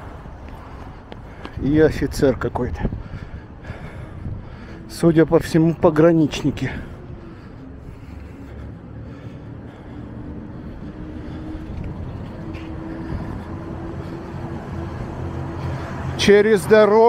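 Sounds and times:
motor vehicle engine rumble: 0:00.0 - 0:16.3.

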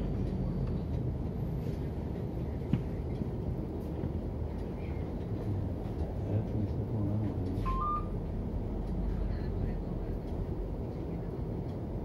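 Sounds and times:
tram rumbling on track: 0:00.0 - 0:12.0.

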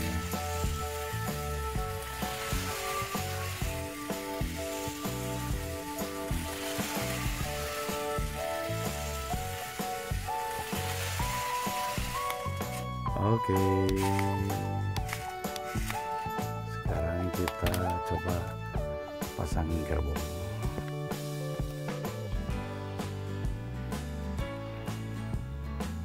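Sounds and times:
background music: 0:00.0 - 0:26.0.

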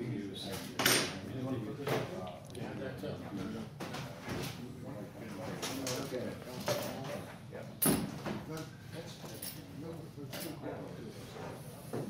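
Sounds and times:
low background voices: 0:00.0 - 0:12.0.

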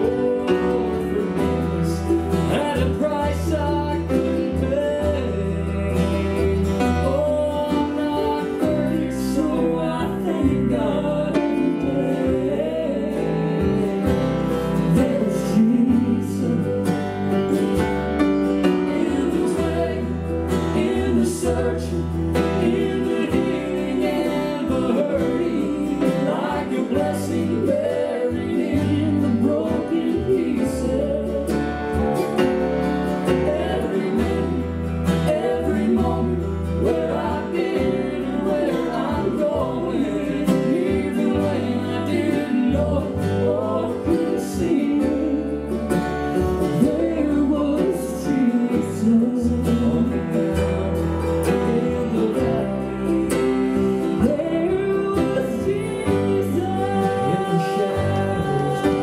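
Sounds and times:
acoustic guitar: 0:00.0 - 0:59.0
mandolin: 0:00.0 - 0:59.0
person singing: 0:00.0 - 0:59.0.

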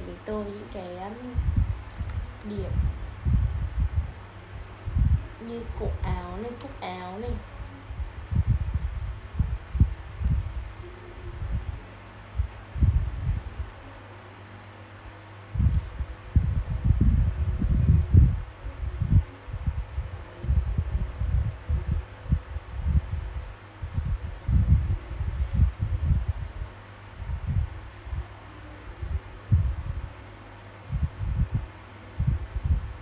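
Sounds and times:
marker scrubbing on paper: 0:20.1 - 0:25.8.

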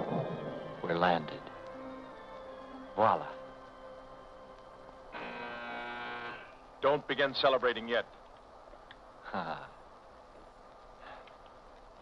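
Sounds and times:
man's voice: 0:00.0 - 0:01.6.

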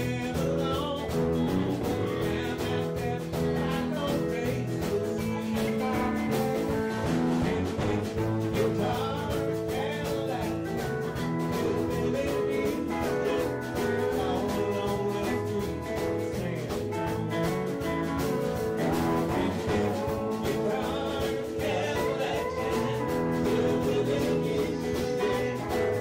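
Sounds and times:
man singing: 0:00.0 - 0:26.0
stage keyboard: 0:00.0 - 0:26.0
steady drum beat: 0:00.0 - 0:26.0.

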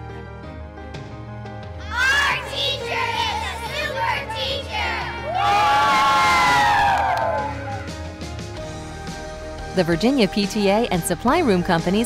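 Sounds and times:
background music: 0:00.0 - 0:12.0
children cheering: 0:05.2 - 0:07.9.

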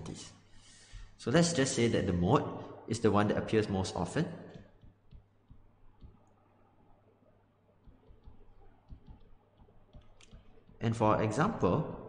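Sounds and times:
stylus tapping on tablet screen: 0:04.5 - 0:06.4, 0:07.8 - 0:10.8.

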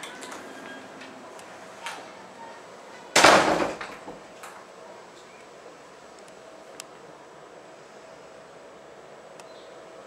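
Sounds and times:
loud bang: 0:03.2 - 0:04.0.

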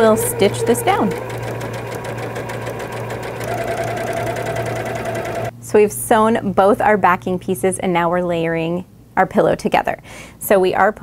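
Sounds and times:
high whine: 0:00.0 - 0:05.5
sewing machine stitching: 0:00.0 - 0:05.5.

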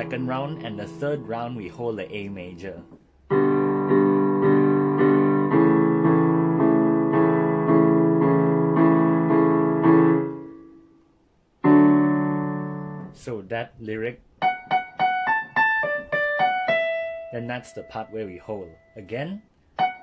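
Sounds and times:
digital piano chords: 0:00.0 - 0:20.0.

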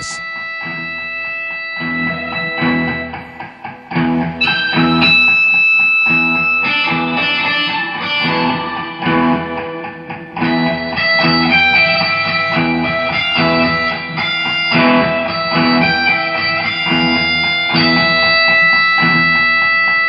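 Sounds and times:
looped plucked guitar phrase: 0:00.0 - 0:20.0.

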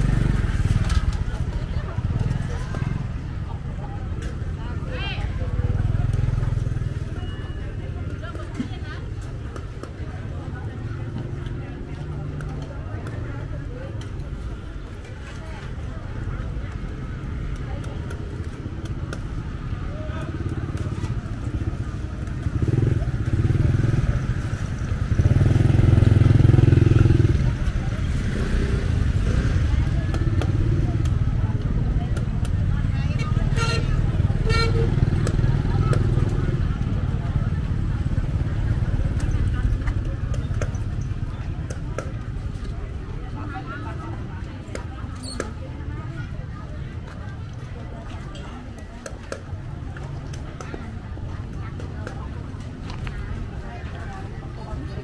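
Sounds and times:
motorbike engines passing: 0:00.0 - 0:55.0
people chatting: 0:00.0 - 0:55.0.

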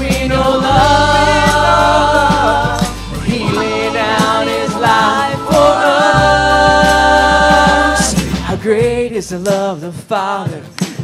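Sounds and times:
steady bass: 0:00.0 - 0:09.7
voices singing: 0:00.0 - 0:10.4
worship band music: 0:00.0 - 0:10.6.

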